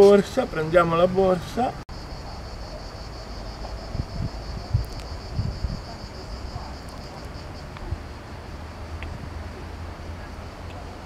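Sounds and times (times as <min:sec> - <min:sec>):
high pulsing insect trill: 0:00.0 - 0:08.9
wind rumble on microphone: 0:02.2 - 0:11.0.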